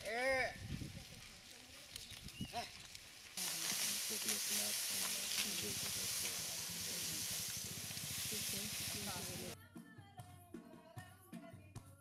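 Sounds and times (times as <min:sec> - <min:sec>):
oxen pulling plough through grass: 0:00.6 - 0:09.6.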